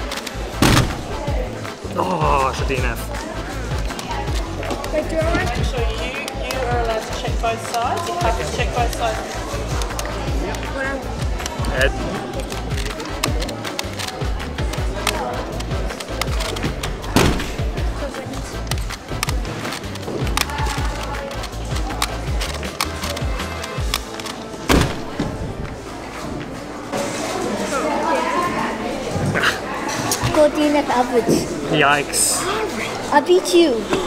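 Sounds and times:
puzzles clicking and clattering: 0:02.4 - 0:25.8.

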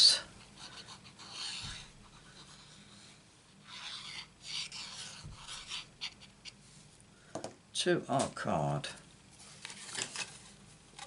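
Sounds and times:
card stock rasping and rubbing: 0:00.6 - 0:06.4.

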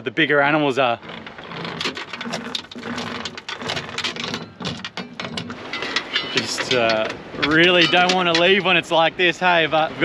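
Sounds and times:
anchor chain clinking and rattling: 0:01.0 - 0:08.8.

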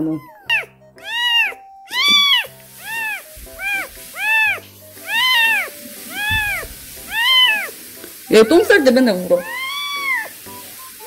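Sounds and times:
kitten mewing: 0:00.0 - 0:07.7, 0:09.4 - 0:10.3.

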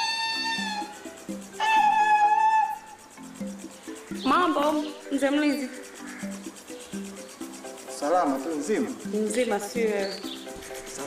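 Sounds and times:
sustained film score notes: 0:00.0 - 0:11.0.

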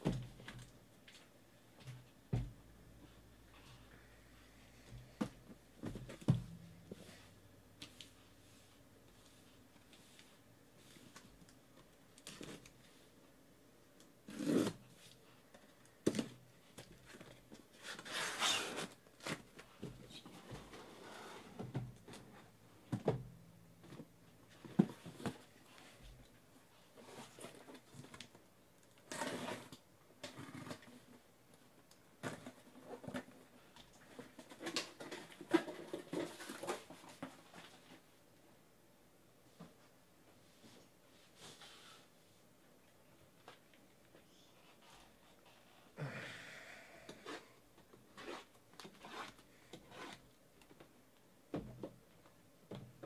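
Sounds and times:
cardboard and tape rustling: 0:32.2 - 0:38.1.

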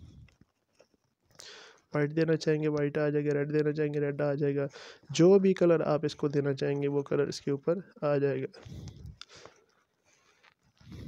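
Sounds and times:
breath and mouth noises: 0:08.5 - 0:11.0.

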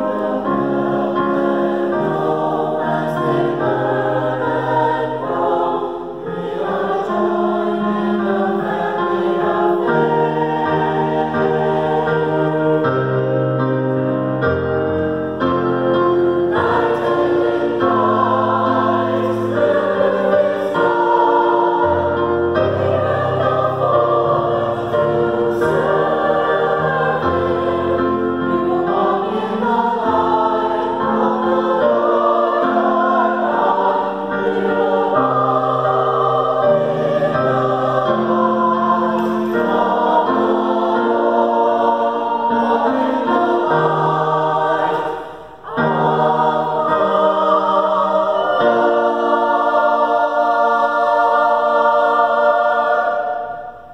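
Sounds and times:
church choir singing: 0:00.0 - 0:53.9
piano accompaniment: 0:00.0 - 0:53.9.

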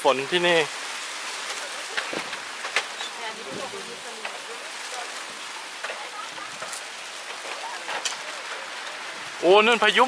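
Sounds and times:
rain on thatched roof: 0:00.0 - 0:10.0.

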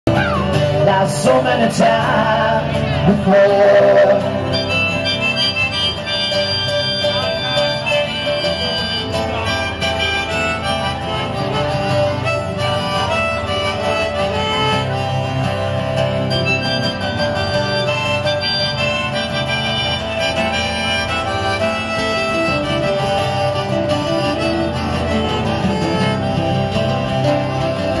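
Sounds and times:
strummed acoustic guitars: 0:00.1 - 0:28.0
harmonica playing: 0:03.8 - 0:28.0.

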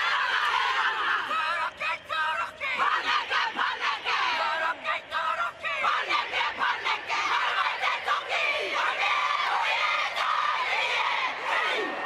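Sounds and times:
women chanting in unison: 0:02.4 - 0:12.0.

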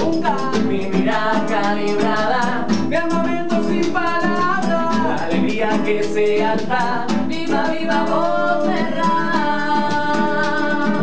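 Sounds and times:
voices singing: 0:00.0 - 0:11.0.

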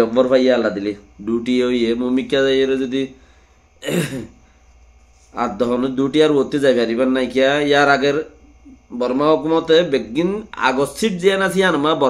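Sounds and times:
man clearing his throat: 0:03.8 - 0:04.4.

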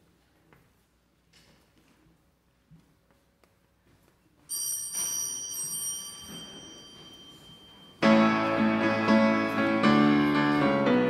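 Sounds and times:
small high-pitched bell ringing: 0:04.5 - 0:08.2.

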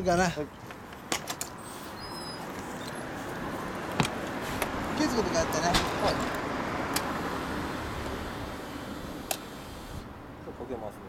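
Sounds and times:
steady rushing background noise: 0:02.4 - 0:11.0.

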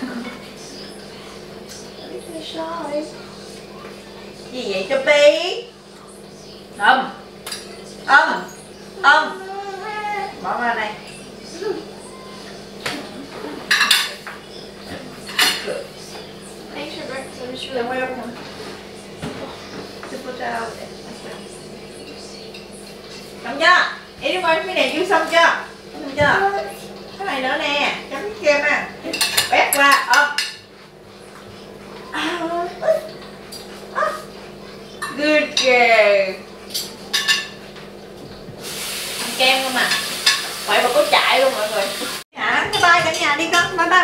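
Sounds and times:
cutlery clinking against plates: 0:07.4 - 0:08.7, 0:12.8 - 0:16.3, 0:29.0 - 0:30.7, 0:34.9 - 0:35.8, 0:36.6 - 0:37.9, 0:39.8 - 0:40.6.

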